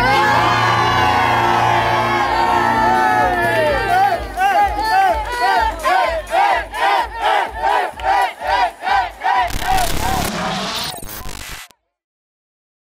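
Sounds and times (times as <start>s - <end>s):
group chanting shouts: 0.0s - 10.4s
steady thumping beat: 4.2s - 10.9s.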